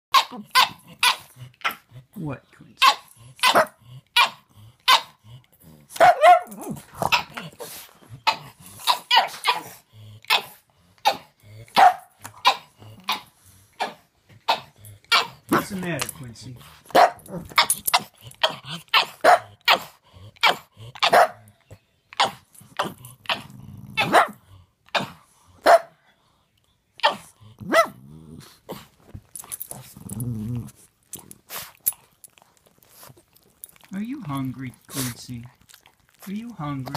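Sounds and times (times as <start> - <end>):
dog growling: 0.1 - 2.2, 2.8 - 21.2, 22.2 - 25.6, 27.0 - 36.9
dog barking: 2.8 - 5.2, 5.9 - 7.3, 8.3 - 13.2, 13.8 - 15.7, 16.9 - 17.7, 18.4 - 21.5, 22.2 - 26.0, 27.0 - 28.0.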